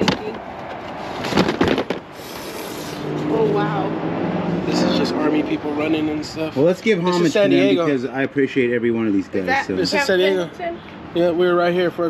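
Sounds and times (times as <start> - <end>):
knocks in cardboard box: 1.3 - 2.1.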